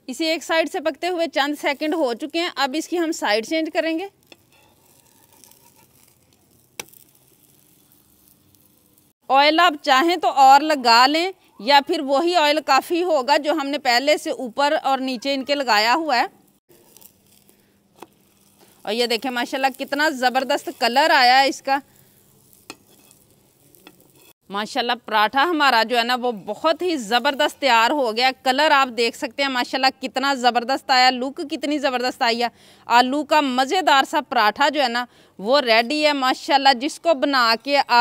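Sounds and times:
faint sizzling: 0.1 - 32.2.

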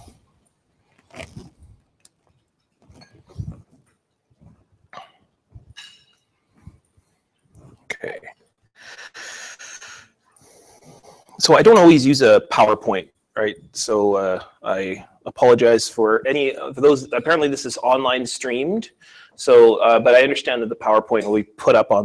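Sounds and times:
knocks and rustles on microphone: 2.8 - 4.8, 7.5 - 8.0
breaths into microphone: 19.0 - 19.4.

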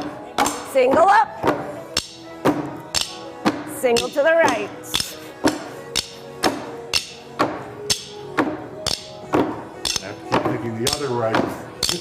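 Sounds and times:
background music with steady beat: 0.0 - 12.0
drumsticks striking milk crates: 0.4 - 12.0.

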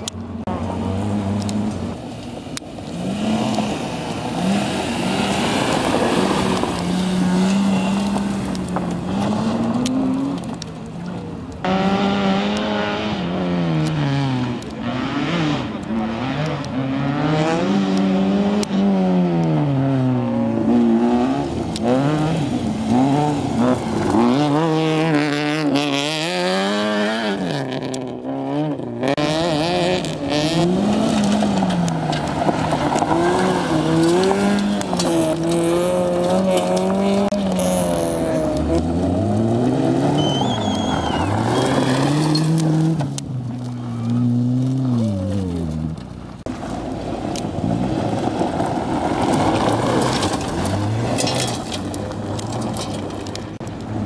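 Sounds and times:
rally car engines revving: 0.0 - 54.0
tyres sliding on gravel: 0.6 - 11.5, 21.3 - 27.9, 29.3 - 54.0.

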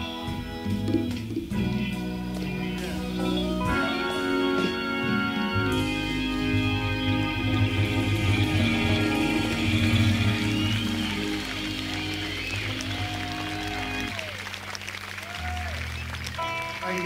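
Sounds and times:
bass: 0.0 - 17.0
held keyboard chords: 0.0 - 17.0.

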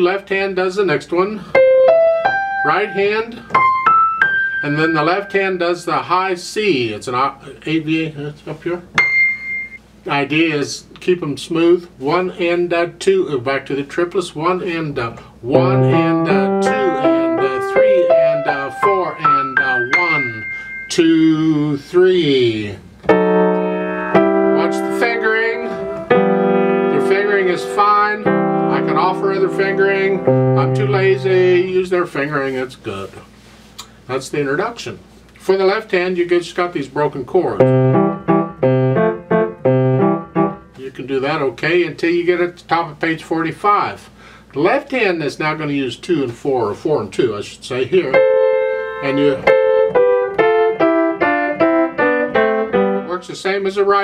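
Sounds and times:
piano chords ringing: 1.5 - 6.0, 9.0 - 9.8, 15.5 - 21.8, 23.0 - 31.9, 37.5 - 40.8, 48.0 - 53.3.

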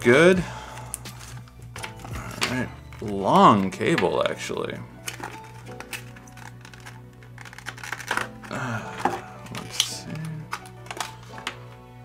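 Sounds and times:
background music: 0.0 - 12.0
plastic packaging crinkling: 1.0 - 4.4, 5.0 - 11.8.

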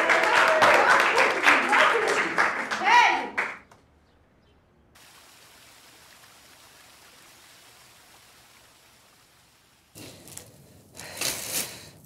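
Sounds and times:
people clapping: 0.0 - 3.8
waterfall rushing into pool: 5.0 - 10.0.

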